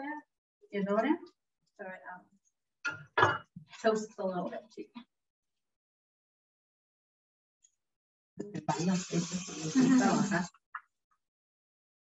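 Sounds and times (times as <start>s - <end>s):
woman speaking indistinctly: 0.0s - 2.3s, 3.8s - 5.1s, 8.4s - 10.5s
hiss: 8.7s - 10.5s.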